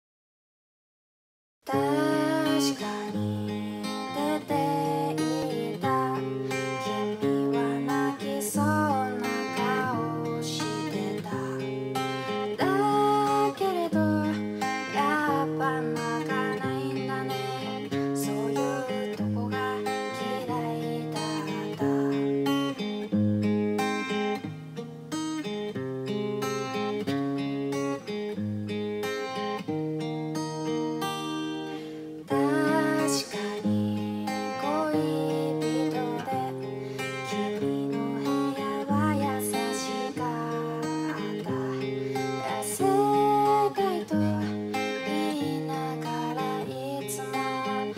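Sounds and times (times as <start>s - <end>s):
woman singing pop ballad: 1.7s - 22.8s, 32.3s - 47.9s
strummed acoustic guitar: 1.7s - 47.9s.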